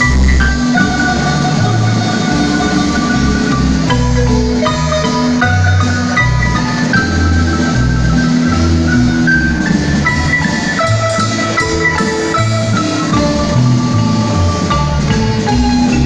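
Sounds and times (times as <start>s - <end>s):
bass line: 0.0s - 16.0s
marimba melody: 0.0s - 16.0s.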